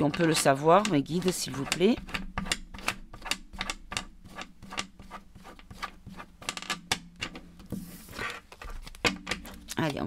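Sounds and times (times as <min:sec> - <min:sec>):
cards being shuffled: 0:07.6 - 0:10.0.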